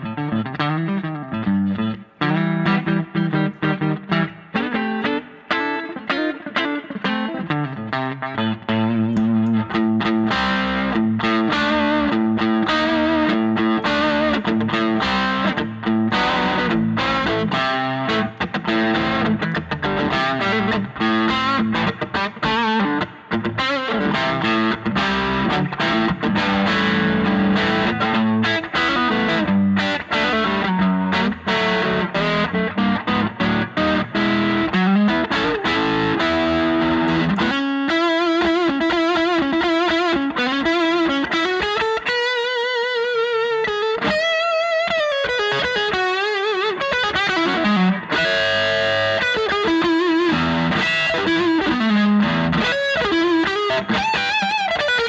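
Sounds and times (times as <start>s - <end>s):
overdriven electric guitar: 0.0s - 55.0s.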